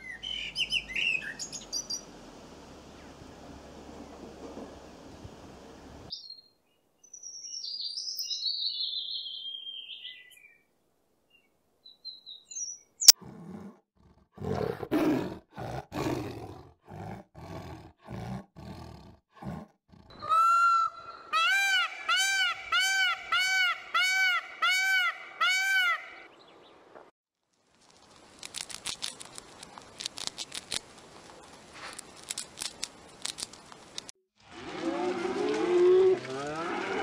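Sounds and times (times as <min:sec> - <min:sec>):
blackbird singing: 0:00.0 - 0:02.0, 0:06.1 - 0:10.6, 0:11.3 - 0:13.2
tiger roaring: 0:13.2 - 0:20.1, 0:34.6 - 0:37.0
peacock calling: 0:20.1 - 0:26.3.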